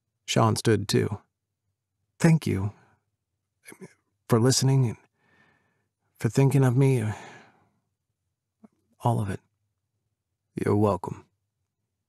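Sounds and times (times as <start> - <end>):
man speaking: 0.3 - 1.2, 2.2 - 2.8, 3.7 - 5.0, 6.2 - 7.4, 9.0 - 9.4, 10.6 - 11.2.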